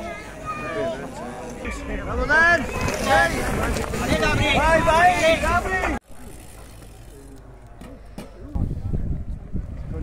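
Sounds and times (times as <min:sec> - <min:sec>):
outdoor noise: 0:00.0 - 0:10.0.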